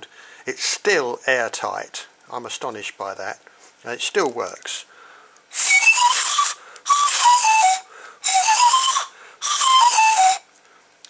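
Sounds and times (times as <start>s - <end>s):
breathy pan pipes: 5.5s - 10.5s.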